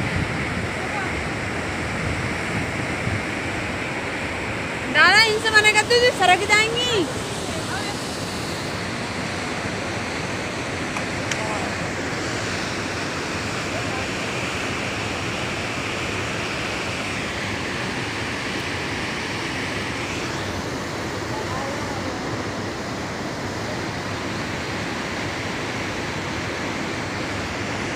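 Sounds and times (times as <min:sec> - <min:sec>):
river rapids rushing: 0:00.0 - 0:27.9.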